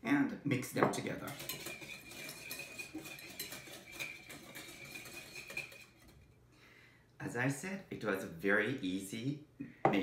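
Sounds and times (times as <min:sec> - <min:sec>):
whisk clicking against glass bowl: 0:01.3 - 0:06.0.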